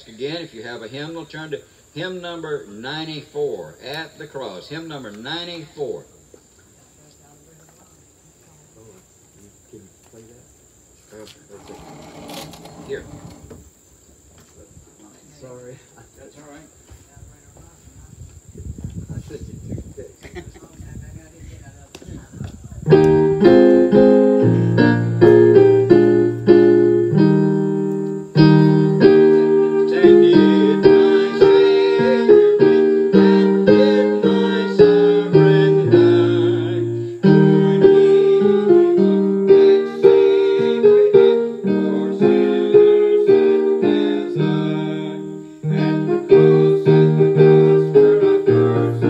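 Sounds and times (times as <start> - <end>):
electric keyboard playing hymn: 22.9 - 49.0.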